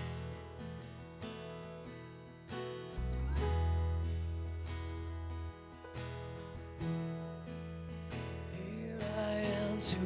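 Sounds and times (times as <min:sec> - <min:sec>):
acoustic guitar strumming: 0:00.0 - 0:10.0
piano: 0:00.0 - 0:10.0.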